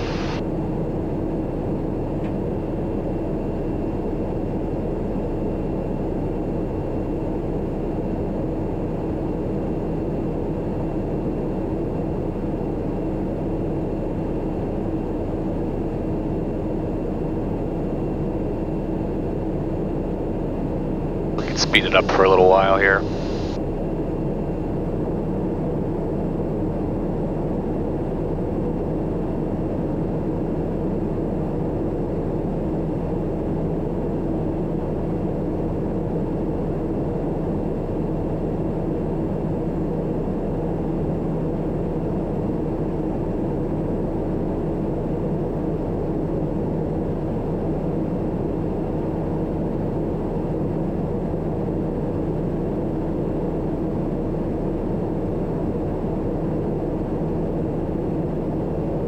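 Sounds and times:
turboprop engine cabin drone: 0.0s - 59.0s.

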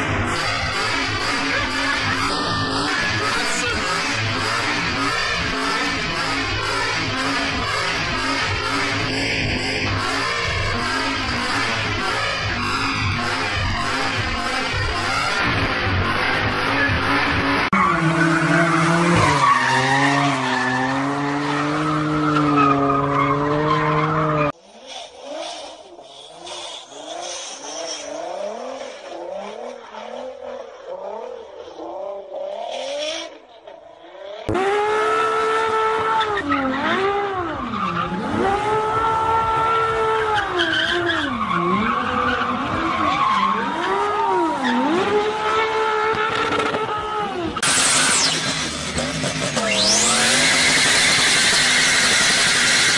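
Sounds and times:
loud engine revving: 0.0s - 24.6s, 34.5s - 52.9s
car engine at high pitch: 0.0s - 52.9s.

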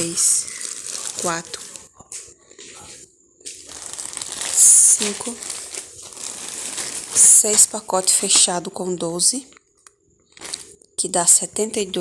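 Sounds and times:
plastic wrapping crinkling: 0.0s - 10.8s.

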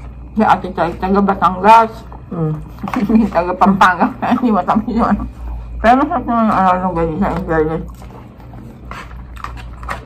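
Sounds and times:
steady low hum: 0.0s - 10.0s
chewing: 6.5s - 10.0s.

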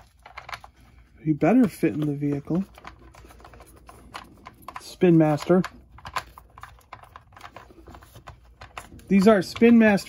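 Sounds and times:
plastic toy clicks and knocks: 4.1s - 7.6s.

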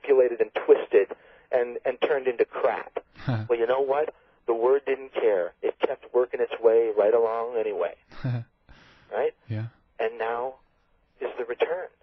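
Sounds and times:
man talking: 0.0s - 10.6s, 11.2s - 12.0s.

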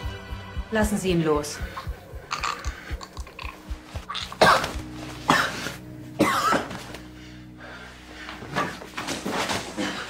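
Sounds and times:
tense music with pulsing beat: 0.0s - 9.8s
man coughing grunts: 4.1s - 6.8s.

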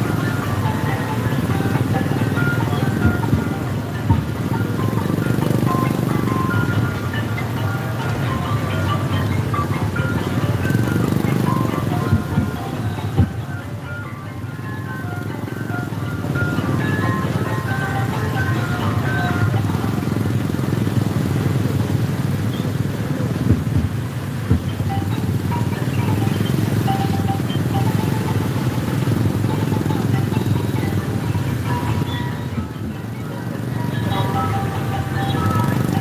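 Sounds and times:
music with short melody notes: 0.0s - 21.3s, 23.8s - 36.0s
motorcycles driving slowly: 0.0s - 36.0s.

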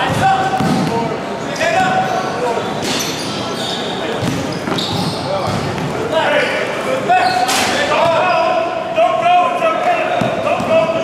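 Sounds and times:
basketballs bouncing on hardwood: 0.1s - 1.0s, 4.2s - 5.9s.

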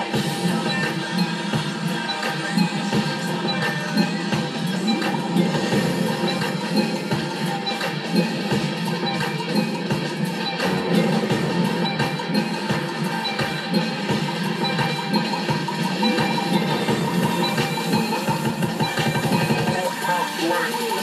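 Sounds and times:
dj mix with a beat: 0.0s - 21.0s.

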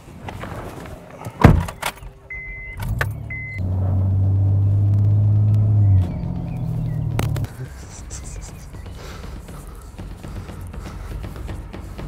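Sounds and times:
car door slamming: 1.3s - 2.0s
car engine starting and running: 1.4s - 9.7s
car chime beeps: 1.8s - 3.6s.

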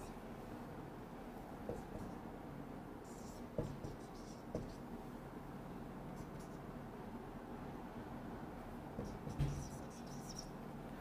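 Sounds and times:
marker scratching on whiteboard: 1.7s - 2.2s, 3.0s - 4.9s, 9.0s - 10.5s
light knocks: 9.0s - 9.7s.

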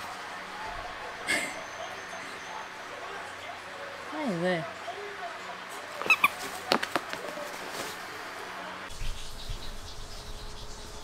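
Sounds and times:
dog squeaks: 6.0s - 6.5s.

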